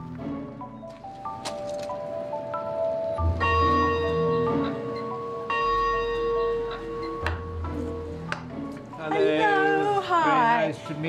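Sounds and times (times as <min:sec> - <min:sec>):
large bell ringing: 0:02.6 - 0:08.3.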